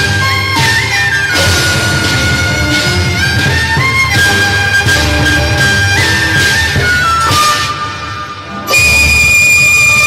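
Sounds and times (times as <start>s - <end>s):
opera instrumental ensemble: 0.0s - 10.0s.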